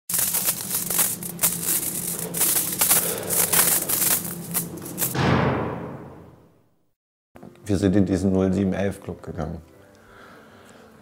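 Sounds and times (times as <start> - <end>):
deep boom: 5.2 - 6.5.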